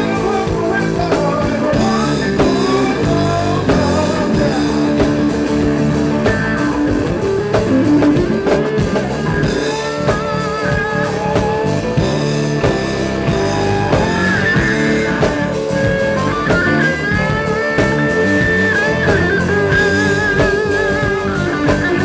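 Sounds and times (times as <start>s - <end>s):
drum kit: 0.0s - 22.0s
electric guitar with bending notes: 0.0s - 22.0s.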